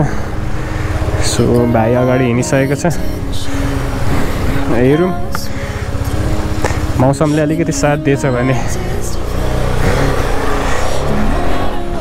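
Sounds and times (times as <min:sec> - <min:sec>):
motorcycle engine running: 0:00.0 - 0:12.0
person speaking: 0:01.2 - 0:03.6, 0:04.4 - 0:10.2.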